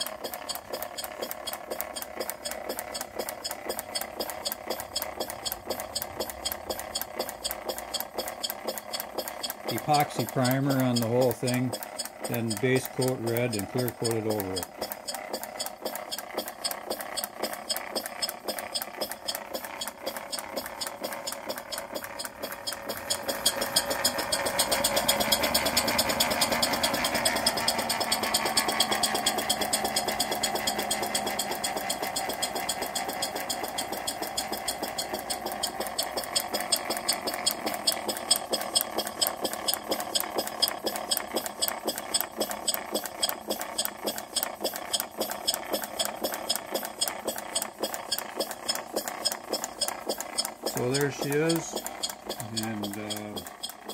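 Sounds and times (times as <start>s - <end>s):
model steam engine beating: 0.0s - 53.9s.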